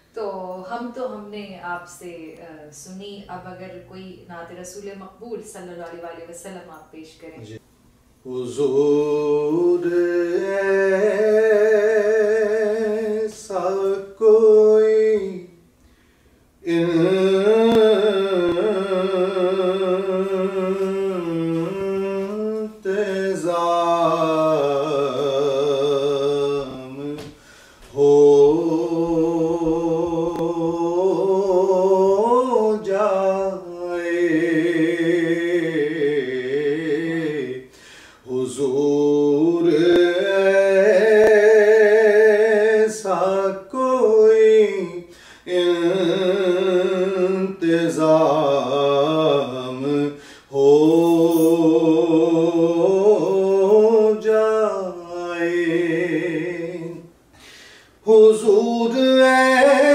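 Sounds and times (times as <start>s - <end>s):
man reciting devotional poem: 7.4s - 7.6s, 8.2s - 15.7s, 16.6s - 57.2s, 58.0s - 59.9s
breaths: 15.8s - 16.6s, 27.3s - 28.0s, 37.7s - 38.3s, 45.1s - 45.5s, 50.2s - 50.5s, 57.3s - 58.0s
man singing solo: 58.0s - 59.9s.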